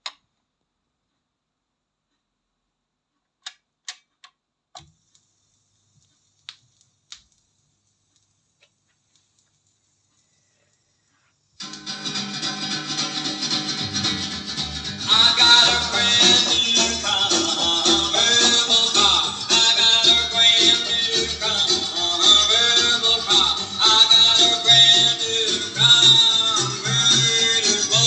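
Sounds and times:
guitar music from vinyl record: 11.6s - 28.0s.

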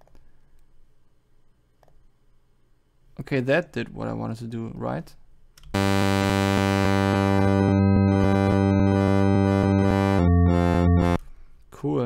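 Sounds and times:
synthesizer sustained note: 5.8s - 11.2s.

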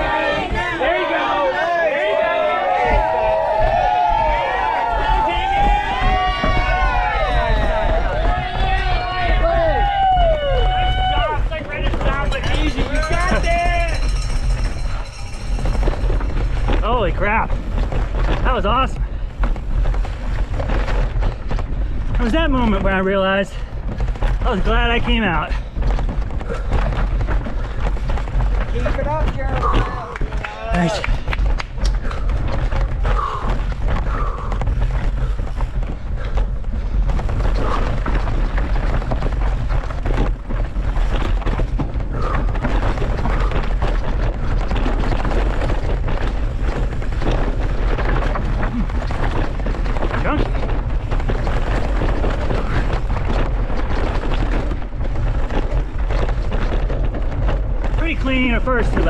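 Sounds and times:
bike rattles and knocks: 0.0s - 59.0s
wind buffeting microphone: 2.7s - 59.0s.

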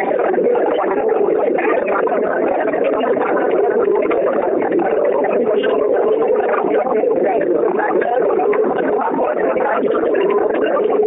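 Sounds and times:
overlapping voices murmuring: 0.0s - 11.0s.

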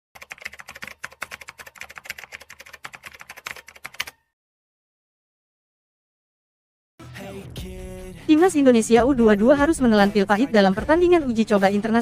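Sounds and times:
keyboard typing clicks: 0.2s - 4.2s.

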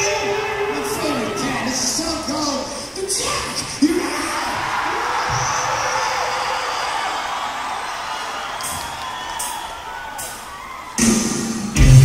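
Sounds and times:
crowd cheering and whooping: 4.0s - 12.0s.

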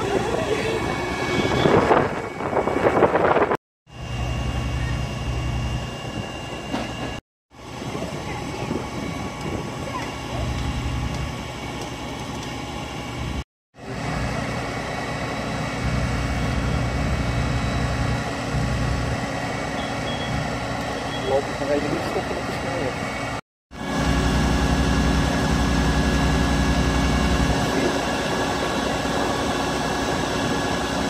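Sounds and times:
diesel engine idling: 7.7s - 31.0s.

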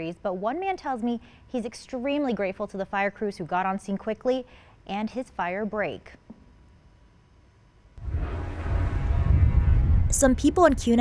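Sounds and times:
jet engines rumbling overhead: 8.0s - 11.0s.

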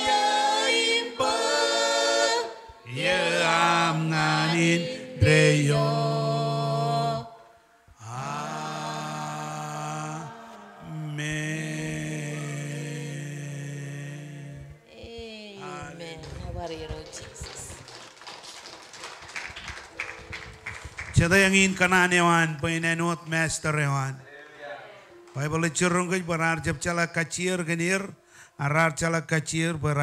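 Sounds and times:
voices singing a hymn: 0.0s - 14.9s, 15.6s - 16.2s
faint room noise: 0.0s - 30.0s.

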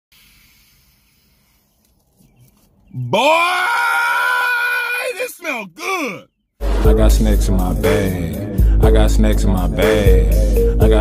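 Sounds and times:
person sniffing through the nose: 0.1s - 1.8s.

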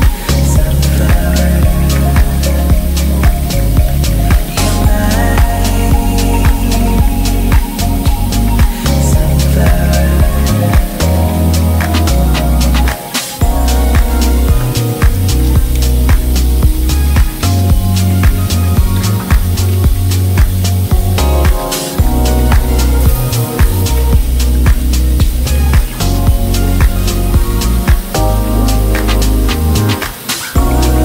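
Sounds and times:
music with heavy bass beat: 0.0s - 31.0s.

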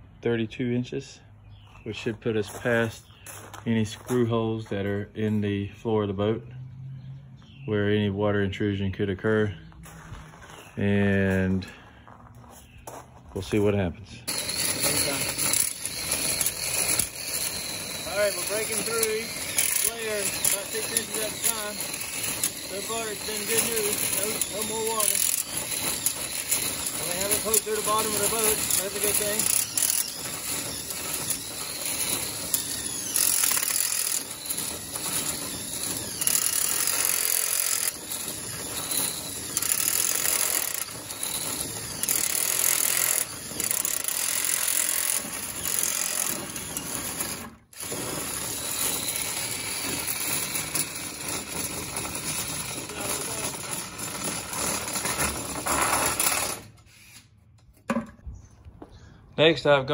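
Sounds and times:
cordless drill drilling: 14.3s - 57.2s.

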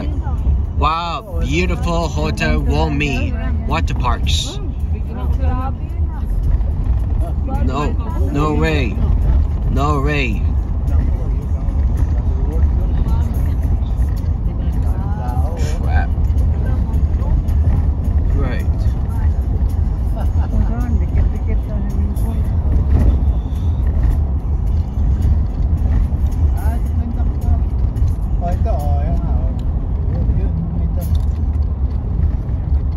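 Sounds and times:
car road and engine rumble: 0.0s - 32.9s.

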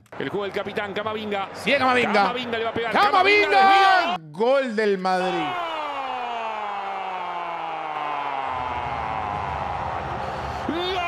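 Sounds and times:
crowd rumble: 8.4s - 11.0s.

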